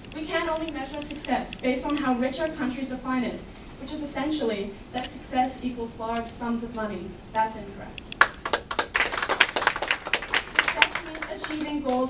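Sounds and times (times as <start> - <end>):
audience applause: 8.2 - 12.0.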